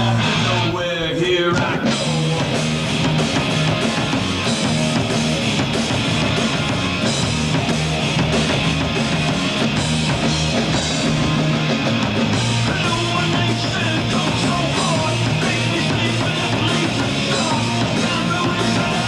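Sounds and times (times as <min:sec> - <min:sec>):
distorted electric guitar glide: 0:00.0 - 0:19.0
hard rock band with drums: 0:00.0 - 0:19.0.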